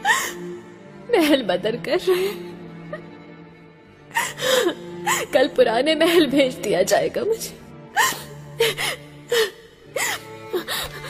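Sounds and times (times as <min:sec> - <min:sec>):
woman sobbing: 0:00.0 - 0:00.5, 0:04.1 - 0:06.6, 0:07.9 - 0:11.0.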